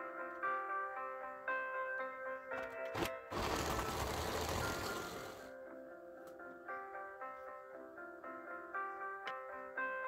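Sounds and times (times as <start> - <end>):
background music: 0.0 - 10.0
electric blender motor running: 3.3 - 5.5.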